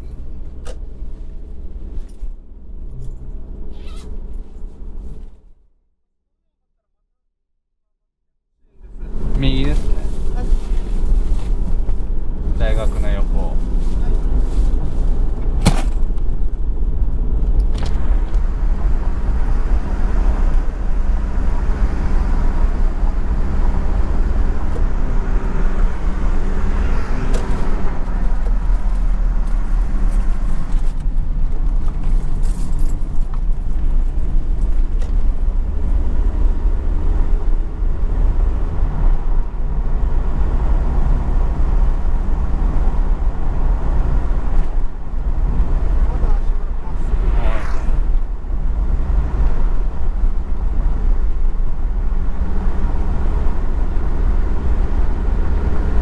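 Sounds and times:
car engine hum: 0.0 - 5.7, 8.6 - 56.0
tyre road noise: 0.0 - 5.7, 8.7 - 56.0.

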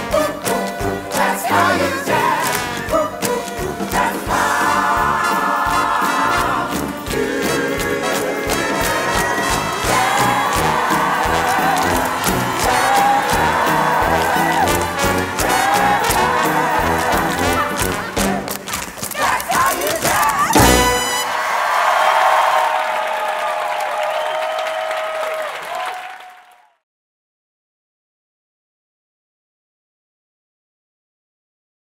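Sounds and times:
orchestra playing jazz show number: 0.0 - 18.6, 20.5 - 21.6
audience cheering and applause: 0.2 - 26.8
sharp percussive hits: 20.6 - 21.3.

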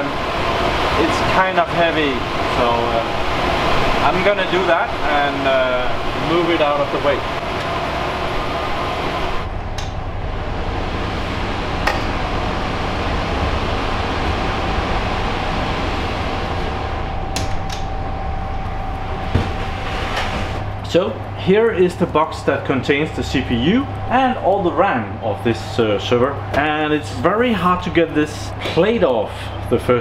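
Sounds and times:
low hum: 0.0 - 28.6
cooling fans rushing: 0.0 - 30.0.

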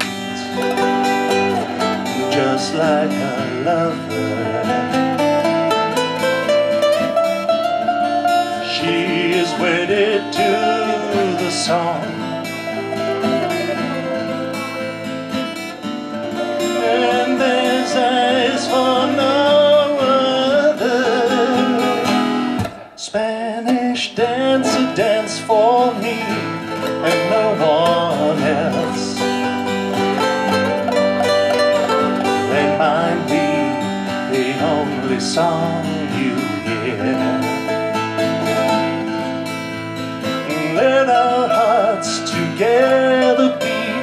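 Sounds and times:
person singing: 0.0 - 6.4, 7.8 - 38.7, 40.2 - 44.0
classical guitar playing: 0.0 - 44.0.

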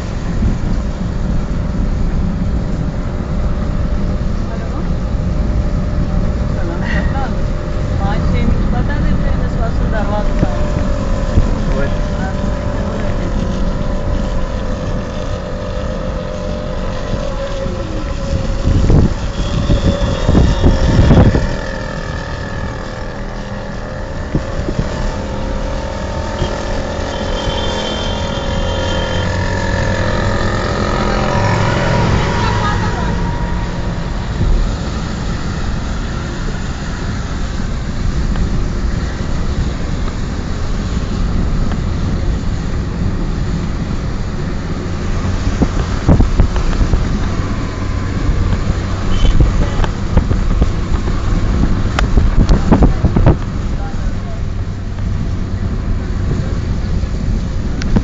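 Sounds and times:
car engine and road rumble: 0.0 - 58.0
wind buffeting microphone: 0.0 - 58.0.

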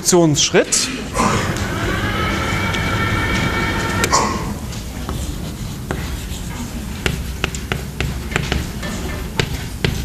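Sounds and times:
electric motor whining: 1.2 - 4.6.

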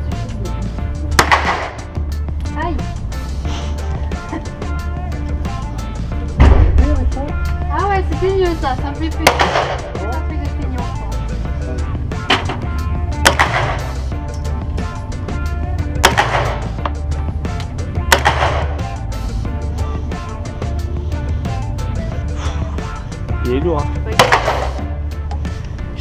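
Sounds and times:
background music with bass beat: 0.0 - 26.0.

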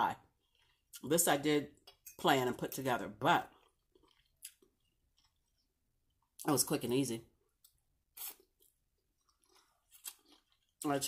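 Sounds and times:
woman speaking: 0.0 - 0.3, 1.0 - 3.5, 6.4 - 7.3
chewing salad: 3.4 - 6.4, 7.6 - 11.0.

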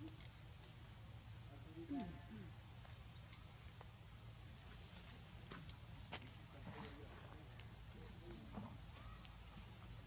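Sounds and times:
rustles and clicks in grass: 2.8 - 4.0.

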